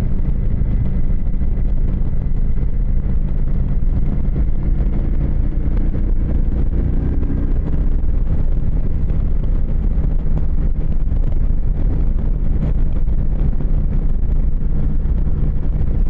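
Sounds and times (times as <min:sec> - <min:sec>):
motorcycle engine running: 0:00.0 - 0:16.0
wind rushing over microphone: 0:00.0 - 0:16.0.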